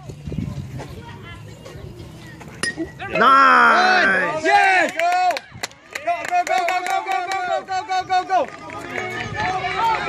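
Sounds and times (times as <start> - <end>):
faint spectator chatter: 0.0 - 10.0
metal bat pinging ball: 2.6 - 3.0.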